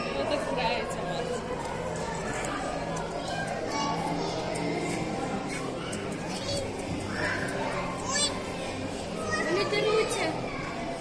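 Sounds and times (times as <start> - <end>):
children talking and calling out: 1.4 - 11.0.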